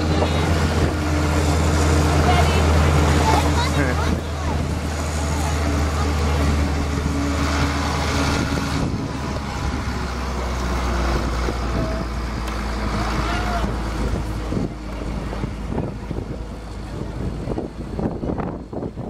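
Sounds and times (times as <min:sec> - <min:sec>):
tractor engine droning: 0:00.0 - 0:19.0.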